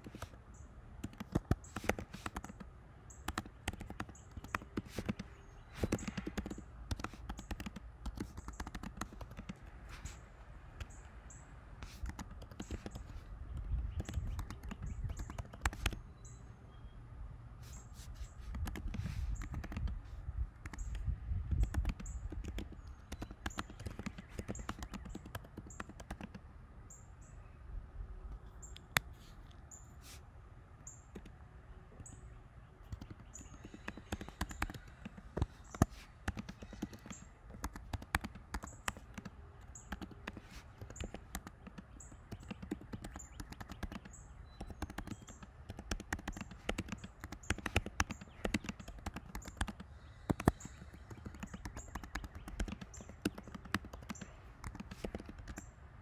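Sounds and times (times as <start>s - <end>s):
computer keyboard typing: 1.0s - 9.8s, 11.8s - 16.0s, 18.5s - 20.0s, 20.6s - 26.4s, 32.9s - 55.7s.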